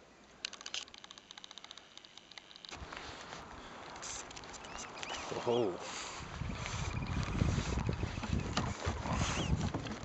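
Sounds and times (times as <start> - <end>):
rapid small sharp clicks: 0.4 - 2.8.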